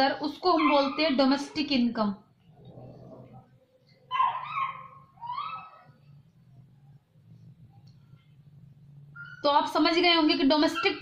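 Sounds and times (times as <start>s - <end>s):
faint low hum: 0.0s - 11.0s
animal whining cries: 4.1s - 6.0s.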